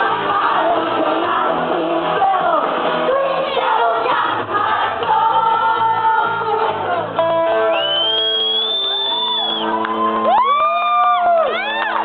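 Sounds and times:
karaoke backing track chord: 0.0s - 7.7s
long high whistle: 7.7s - 9.8s
audience whooping and cheering: 7.7s - 12.0s.

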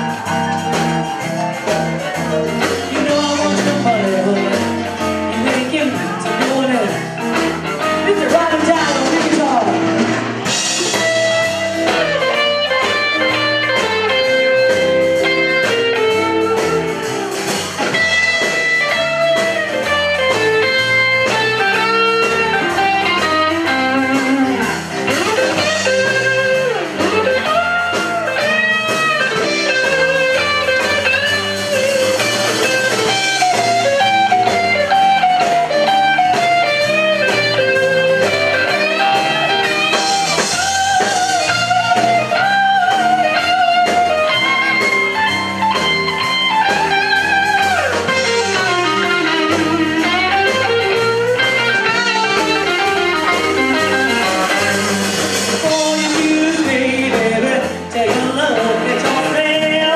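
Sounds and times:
blues band playing: 0.0s - 59.9s
electric lead guitar bent notes: 0.0s - 59.9s.

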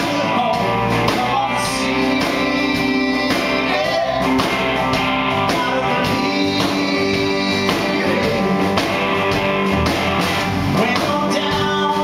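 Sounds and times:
man singing: 0.0s - 9.0s, 10.7s - 12.0s
drum kit: 0.0s - 12.0s
electric guitar: 0.0s - 12.0s.

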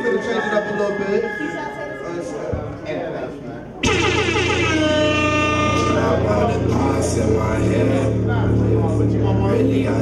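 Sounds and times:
air horn sound effect: 3.8s - 7.2s
hip-hop beat over speakers: 3.8s - 10.0s.

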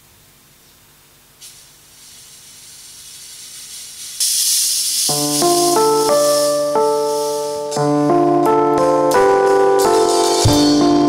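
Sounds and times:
fog machine hissing: 1.3s - 7.8s
electronic keyboard chords: 5.1s - 11.0s.

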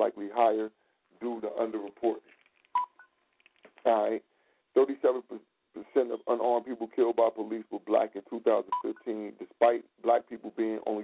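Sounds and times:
person talking over telephone: 4.8s - 11.0s.

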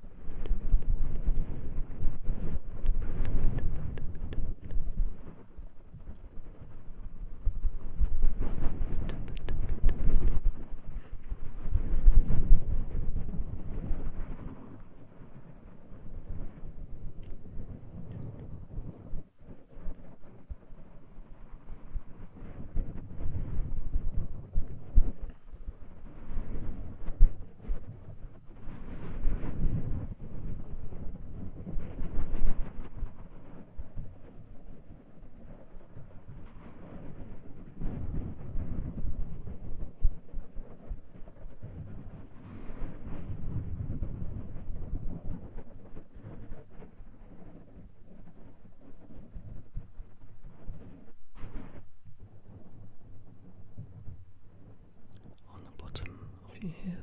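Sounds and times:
hands rubbing microphone: 0.3s - 6.8s, 7.4s - 14.8s, 40.4s - 51.9s.

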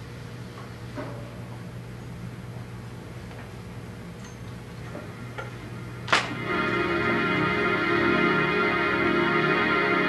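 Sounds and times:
low electrical hum and hiss: 0.0s - 10.0s.

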